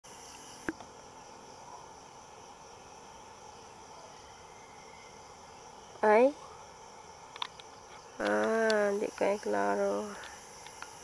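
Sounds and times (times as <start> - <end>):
insects chirping: 0.0 - 11.0.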